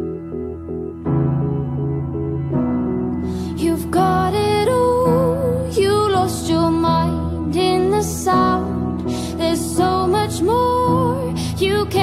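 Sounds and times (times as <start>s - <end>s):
woman singing pop ballad: 3.3s - 12.0s.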